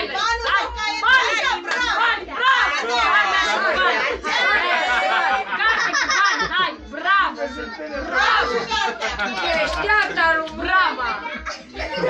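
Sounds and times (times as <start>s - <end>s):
overlapping excited chatter: 0.0s - 12.0s.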